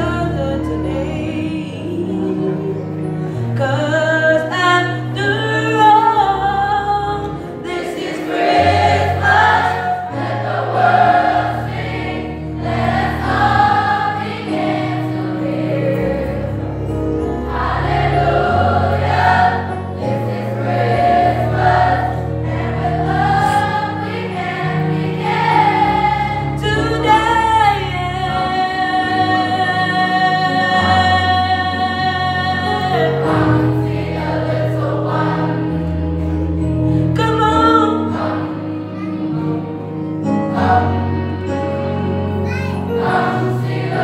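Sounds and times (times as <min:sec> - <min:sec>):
youth choir singing: 0:07.5 - 0:36.2, 0:37.8 - 0:39.0, 0:40.4 - 0:41.5, 0:42.9 - 0:44.0.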